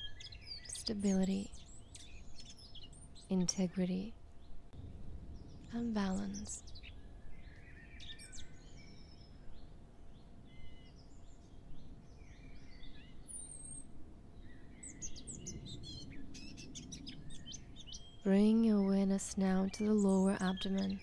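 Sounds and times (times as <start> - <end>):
birds chirping and calling: 0.0 - 4.6, 5.4 - 21.0
faint low background hiss: 0.0 - 21.0.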